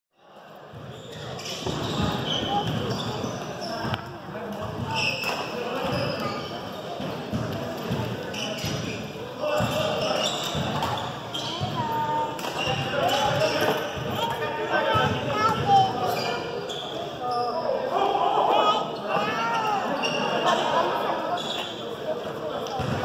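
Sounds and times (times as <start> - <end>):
short squeaks: 0.9 - 3.9, 8.3 - 11.7, 16.0 - 17.6, 21.4 - 21.8.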